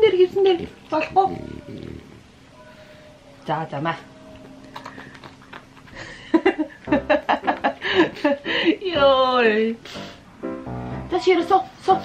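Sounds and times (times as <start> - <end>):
dog's throaty breathing: 0.5 - 2.3.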